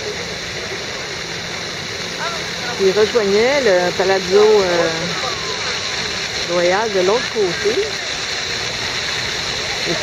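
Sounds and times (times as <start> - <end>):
fountain water splashing on pavement: 0.0 - 10.0.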